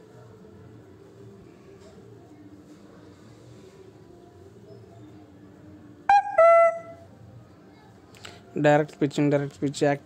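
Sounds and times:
short pitched tones: 6.1s - 7.0s.

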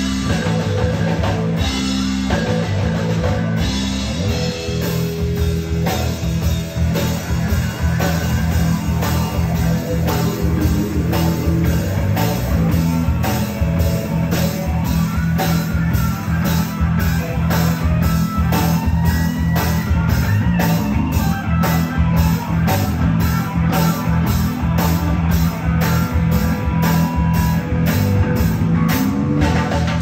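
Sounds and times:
bass guitar: 0.0s - 30.0s
drum kit beat: 0.0s - 30.0s
electric guitar: 0.0s - 30.0s.

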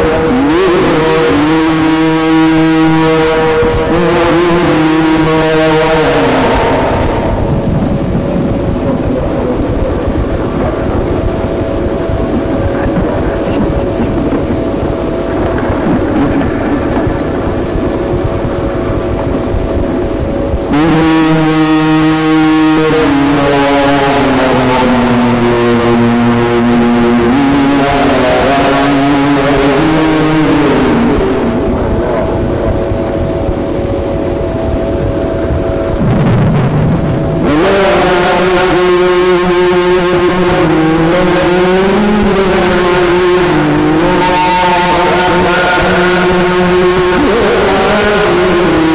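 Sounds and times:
man reciting in chant: 0.0s - 19.8s, 20.6s - 33.9s, 37.4s - 48.9s
steady hum and hiss: 0.0s - 48.9s.

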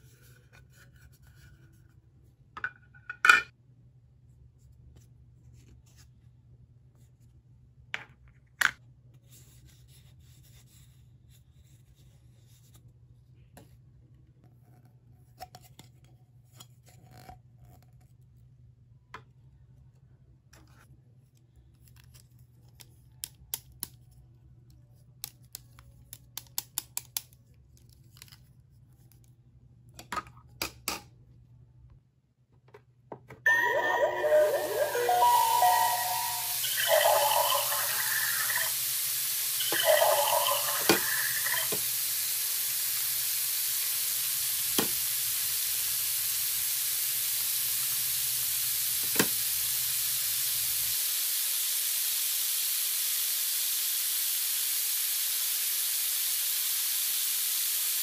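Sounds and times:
short electronic tune: 33.5s - 38.7s.

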